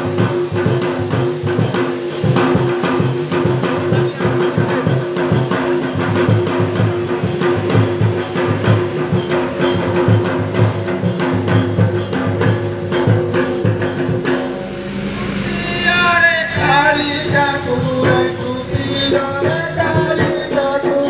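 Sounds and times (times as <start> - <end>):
rapid barrel drumming: 0.0 - 21.0
steady held tone: 13.4 - 20.4.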